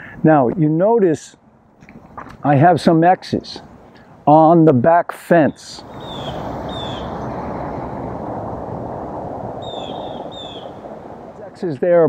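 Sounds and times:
bird chirping: 5.4 - 8.3, 9.5 - 11.4
steady rushing noise: 5.6 - 12.0.

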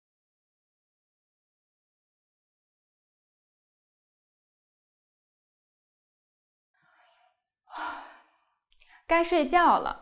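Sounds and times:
short breath in: 6.8 - 8.4.

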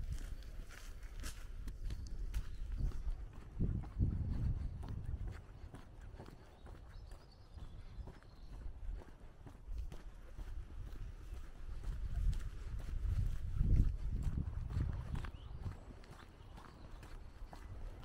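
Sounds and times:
footsteps on asphalt: 0.0 - 18.0.

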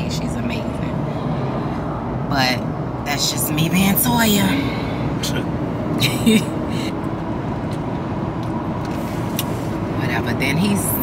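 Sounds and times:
vehicle road and engine noise: 0.0 - 11.0.

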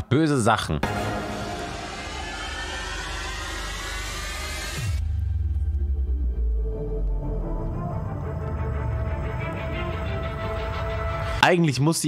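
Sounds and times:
rushing noise: 0.8 - 5.4
low hum: 0.8 - 11.4.

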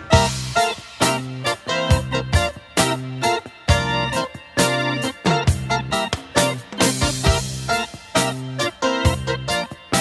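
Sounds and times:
bass and drums: 0.0 - 10.0
keyboard chords: 0.0 - 10.0.

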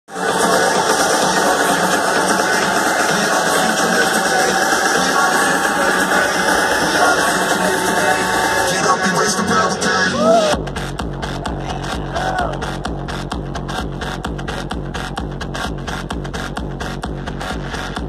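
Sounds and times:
electronic dance music over sound system: 0.1 - 18.0.

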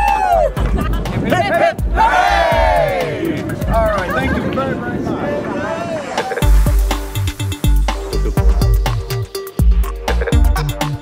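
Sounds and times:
long shout: 0.0 - 0.6
people cheering and whooping: 0.0 - 6.5.

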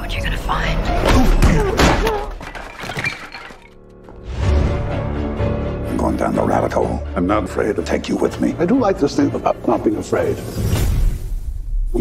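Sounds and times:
trailer music: 0.0 - 1.8, 3.7 - 12.0
glass shattering: 1.8 - 3.9.

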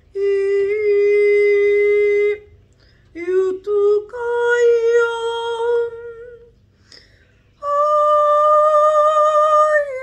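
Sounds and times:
woman singing a long note: 7.6 - 10.0.

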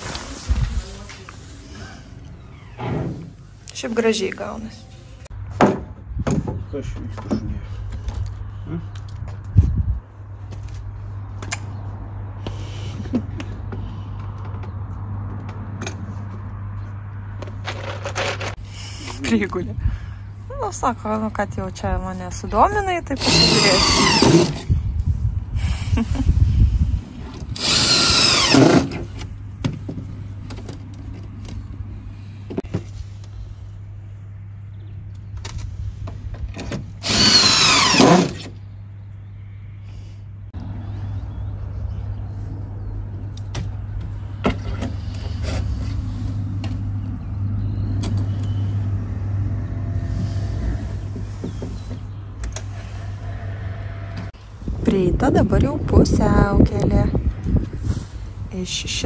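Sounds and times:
steady low hum: 18.6 - 59.0
cordless drill whining: 23.2 - 24.6, 27.6 - 29.0, 37.0 - 38.5.

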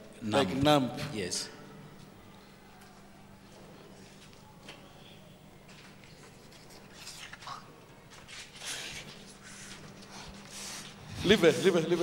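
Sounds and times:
faint whispering: 6.3 - 7.8.

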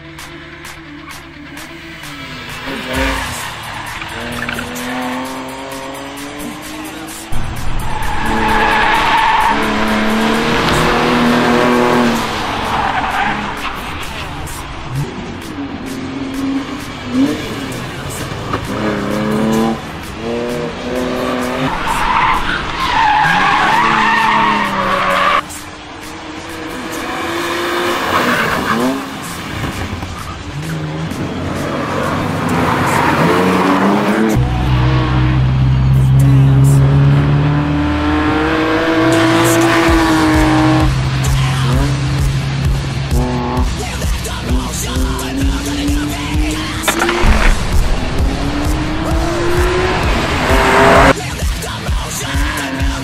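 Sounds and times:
music with bass line: 0.0 - 12.7, 33.8 - 53.0
car engine revving: 0.0 - 53.0
tyres squealing: 2.6 - 6.0, 6.6 - 15.1, 21.0 - 25.6.

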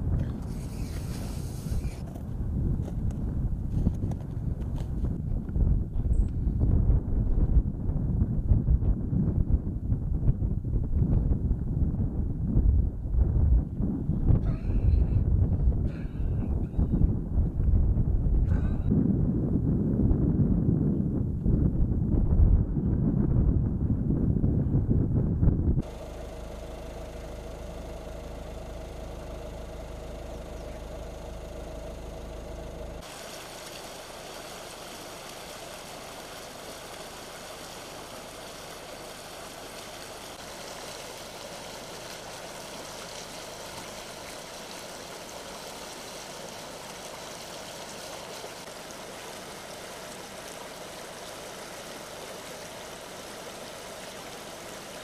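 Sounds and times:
wind rumble on microphone: 0.0 - 33.1
steady low hum: 0.0 - 55.0
stream running over stones: 32.0 - 55.0.

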